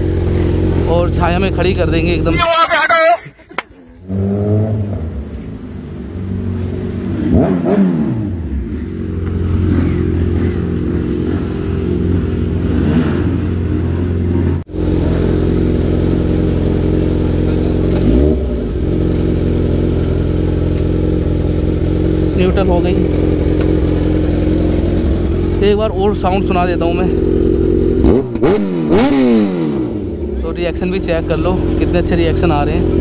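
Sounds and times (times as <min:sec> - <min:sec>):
motorcycle engine revving: 0:00.0 - 0:02.4, 0:04.0 - 0:33.0
motorcycle engine idling: 0:00.0 - 0:02.6, 0:03.4 - 0:28.5, 0:29.9 - 0:33.0.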